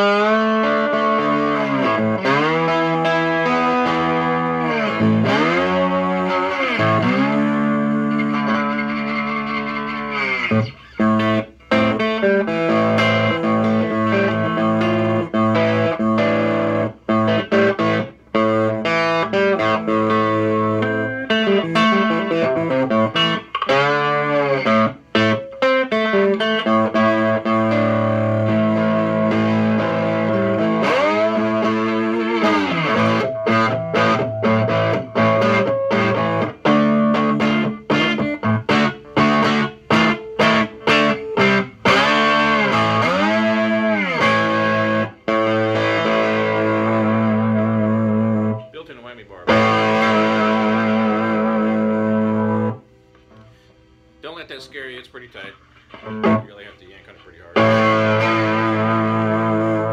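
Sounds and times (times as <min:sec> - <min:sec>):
distorted blues guitar riffs: 0:00.0 - 0:59.9.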